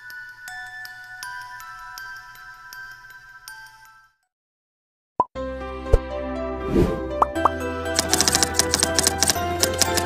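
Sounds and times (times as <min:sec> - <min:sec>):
background music: 0:05.4 - 0:10.0.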